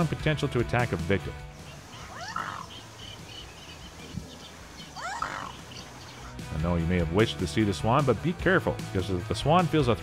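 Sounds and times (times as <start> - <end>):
high chirps of small birds: 1.5 - 6.5
rising bird call: 1.6 - 6.4.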